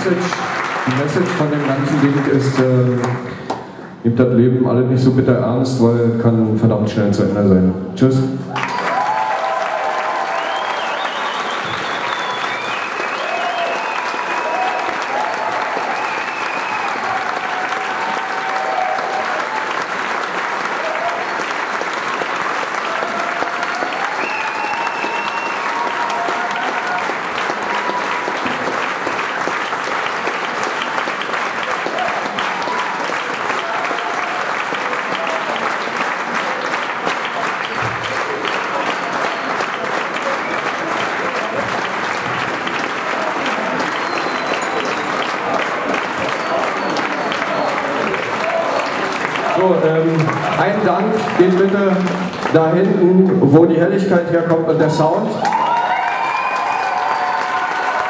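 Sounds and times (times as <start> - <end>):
audience applauding: 0.0 - 3.7, 8.5 - 58.0
shouts and whistles: 8.6 - 19.2, 22.9 - 27.1, 43.7 - 45.4, 46.2 - 49.0, 55.4 - 58.0.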